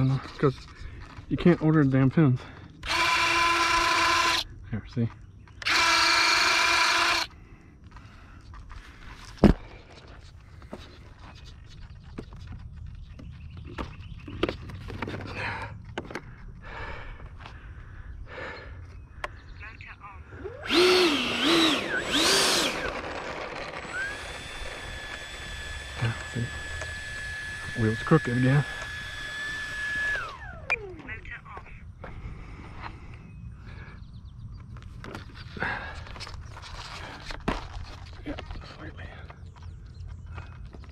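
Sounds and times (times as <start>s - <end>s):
small electric motor whining: 2.4s - 4.5s, 5.6s - 9.0s, 20.3s - 31.1s.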